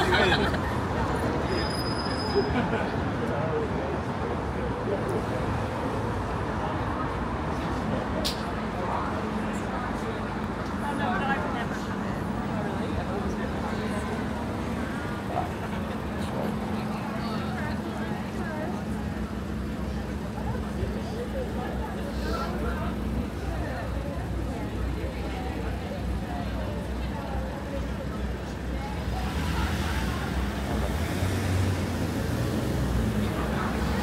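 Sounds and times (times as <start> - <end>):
passers-by talking: 0.0 - 34.0
road traffic: 0.0 - 34.0.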